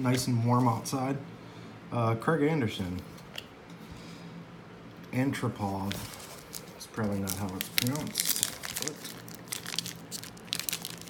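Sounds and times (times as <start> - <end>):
plastic wrapper crinkling and tearing: 5.8 - 11.0.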